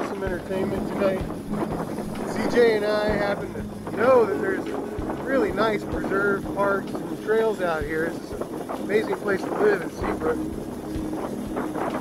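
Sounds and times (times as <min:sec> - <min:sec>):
electric dirt bikes humming: 0:00.0 - 0:12.0
indistinct talking: 0:00.0 - 0:12.0
wind buffeting microphone: 0:00.0 - 0:12.0.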